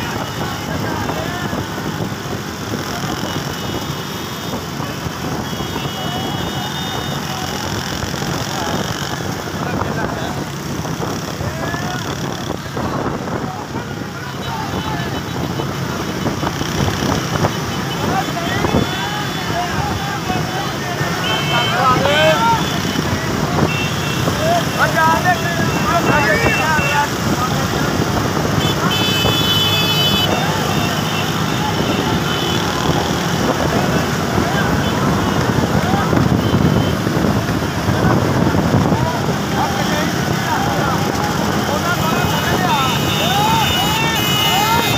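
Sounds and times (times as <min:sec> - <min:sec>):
motorbike engines: 0:00.0 - 0:44.9
road noise: 0:00.0 - 0:44.9
men shouting: 0:17.8 - 0:27.8, 0:39.3 - 0:44.9.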